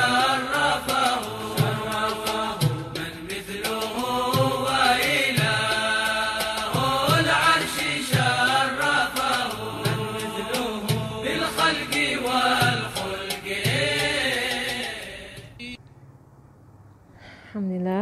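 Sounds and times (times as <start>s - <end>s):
person singing devotional chant: 0.0s - 15.8s
low drum beat: 9.2s - 14.2s.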